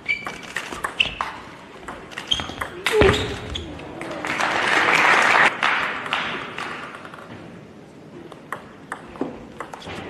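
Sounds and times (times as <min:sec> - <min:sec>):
audience applauding: 0:04.0 - 0:06.9.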